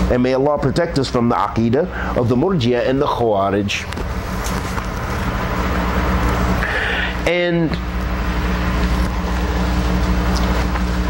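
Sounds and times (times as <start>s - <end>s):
low rumble and hum: 0.0s - 11.0s.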